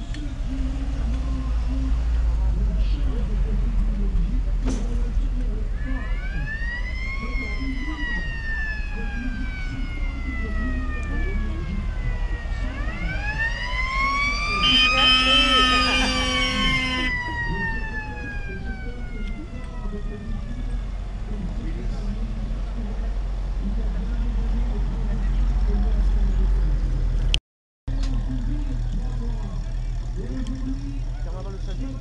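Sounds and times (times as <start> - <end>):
jeep engines running: 0.0 - 32.0
mechanical siren wailing: 5.8 - 21.1
horn sounding: 14.2 - 17.3.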